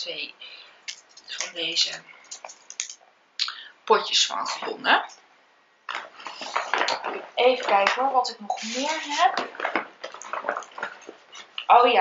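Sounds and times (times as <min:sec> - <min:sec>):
items rustling and clattering on table: 0:00.9 - 0:03.0, 0:05.9 - 0:11.7.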